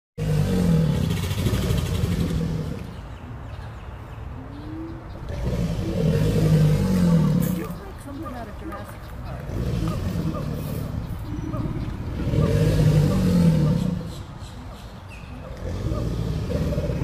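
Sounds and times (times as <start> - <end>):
alligators bellowing: 0.2 - 3.0, 4.8 - 8.4, 9.2 - 14.4, 15.4 - 17.0.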